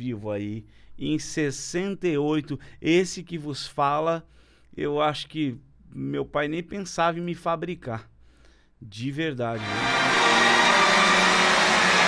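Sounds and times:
audience applauding and cheering: 0:09.6 - 0:12.0.

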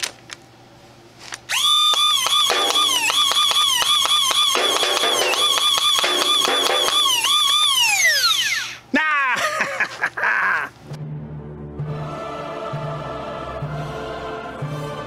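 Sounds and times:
toy blaster flywheel whine: 0:01.5 - 0:08.8.

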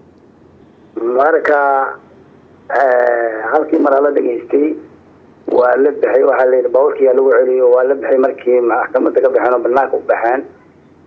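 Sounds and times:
man talking over telephone: 0:01.0 - 0:02.0, 0:02.7 - 0:10.6.

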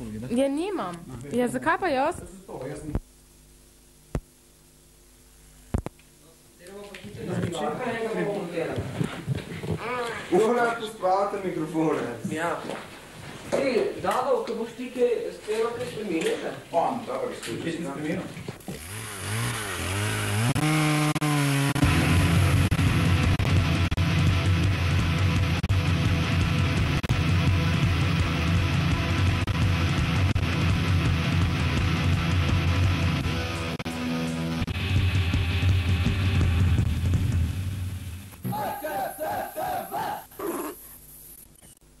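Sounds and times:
band playing heavy riff: 0:21.8 - 0:37.5
distorted electric guitar note: 0:21.8 - 0:38.7
person shouting: 0:38.4 - 0:40.3
person whooping: 0:38.4 - 0:40.4.

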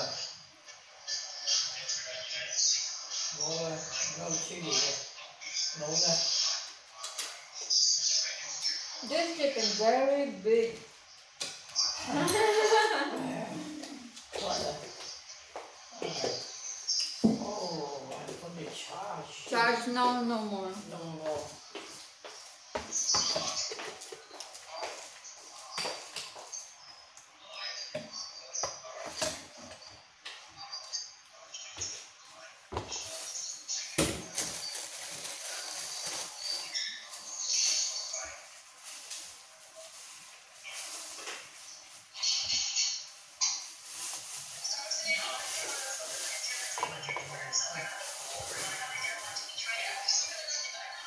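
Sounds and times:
rustling while handling: 0:33.0 - 0:42.2, 0:43.0 - 0:50.4.

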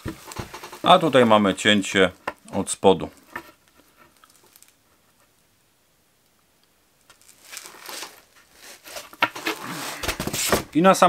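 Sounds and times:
chipboard scraping and rustling: 0:00.0 - 0:01.9, 0:07.1 - 0:10.7.

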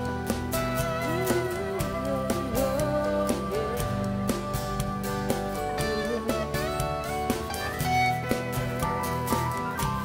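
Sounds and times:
bass guitar: 0:00.0 - 0:10.0
electric guitar: 0:00.0 - 0:10.0.

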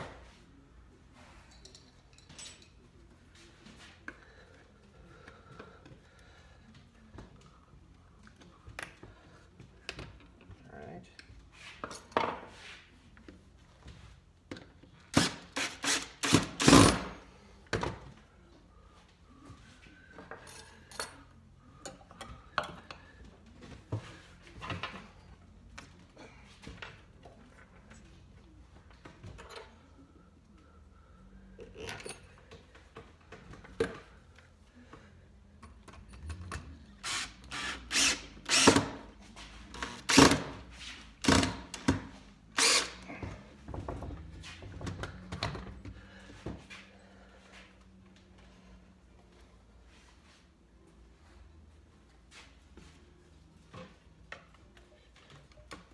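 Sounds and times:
cordless drill driving screws: 0:15.2 - 0:17.1, 0:37.0 - 0:39.0, 0:42.6 - 0:43.0.

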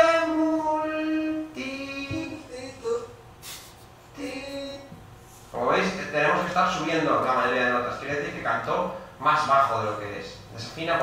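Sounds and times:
pitch-corrected singing voice: 0:04.2 - 0:05.0.

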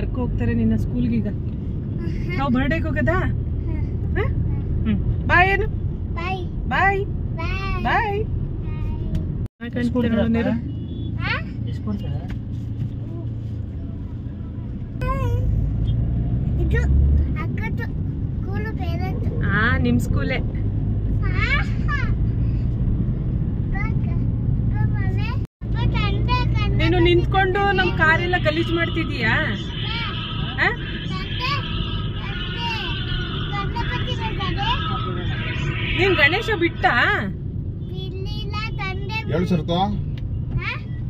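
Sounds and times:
car engine and road noise: 0:00.0 - 0:41.0.

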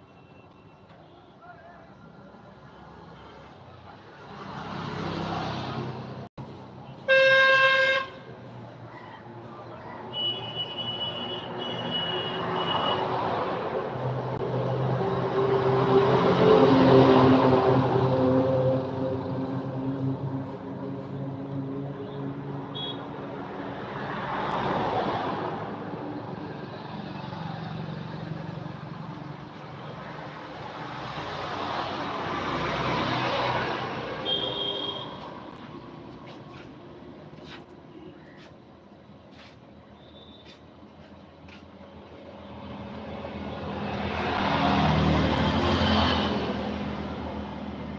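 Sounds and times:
road traffic passing: 0:00.0 - 0:47.9
high horn tone: 0:34.2 - 0:35.3.

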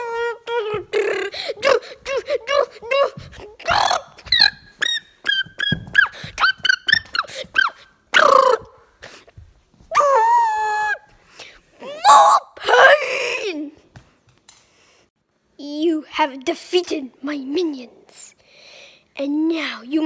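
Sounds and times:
high squeaks and cries: 0:00.0 - 0:08.7.

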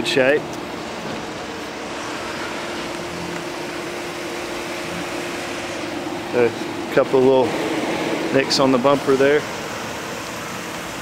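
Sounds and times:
machine hum with steady tone: 0:00.0 - 0:11.0.

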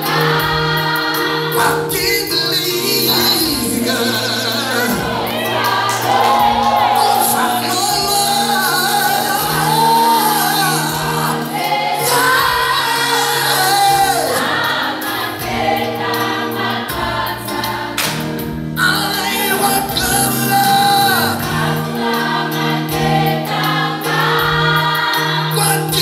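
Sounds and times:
choir singing gospel: 0:00.0 - 0:26.0
man singing into microphone: 0:01.5 - 0:05.6, 0:06.6 - 0:14.6, 0:18.8 - 0:21.5, 0:25.5 - 0:26.0.

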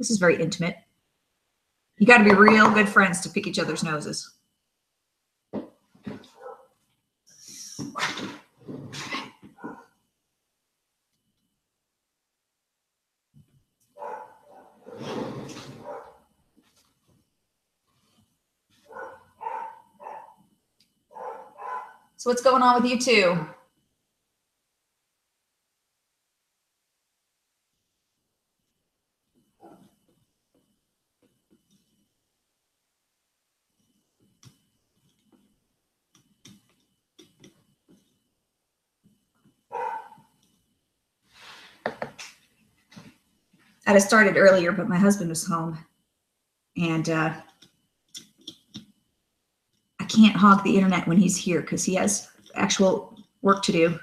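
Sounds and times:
dog barking indoors: 0:06.2 - 0:06.8, 0:09.2 - 0:10.0, 0:13.8 - 0:16.3, 0:18.8 - 0:20.5, 0:21.1 - 0:22.2, 0:29.6 - 0:30.0, 0:39.6 - 0:40.4.

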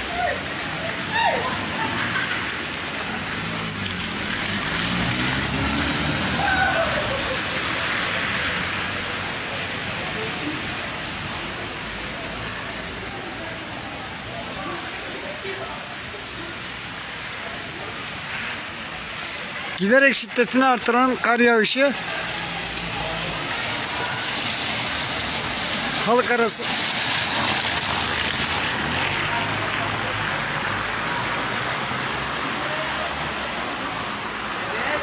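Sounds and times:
hiss of wet street: 0:00.0 - 0:19.8, 0:22.0 - 0:35.0.

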